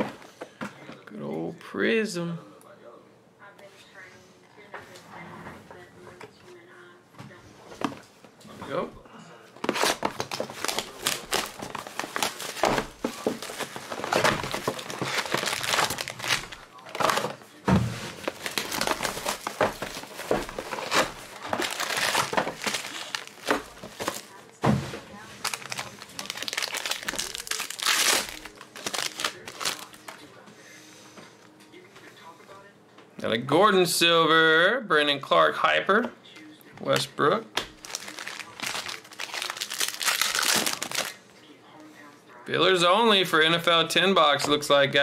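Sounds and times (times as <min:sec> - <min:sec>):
foil packs crinkling and tearing: 0:09.6 - 0:24.6, 0:25.4 - 0:30.2, 0:37.6 - 0:41.2.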